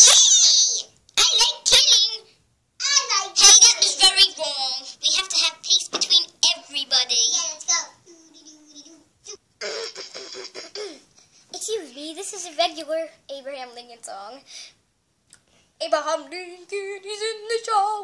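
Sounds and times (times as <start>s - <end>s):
young child singing: 0.0s - 9.0s, 15.8s - 18.0s.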